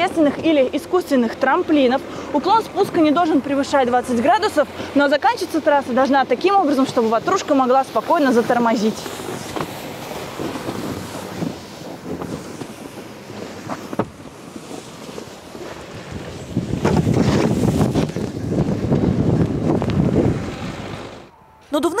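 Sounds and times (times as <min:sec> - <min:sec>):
wind noise on microphone: 0:09.2 - 0:21.3.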